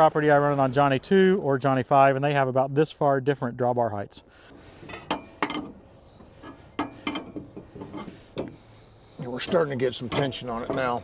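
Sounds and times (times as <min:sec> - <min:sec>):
metal clinks and knocks: 0:04.8 - 0:08.6, 0:09.3 - 0:11.0.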